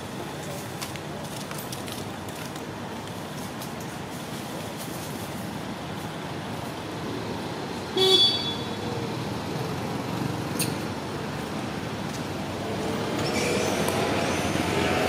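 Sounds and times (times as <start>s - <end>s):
background traffic: 0.0s - 15.0s.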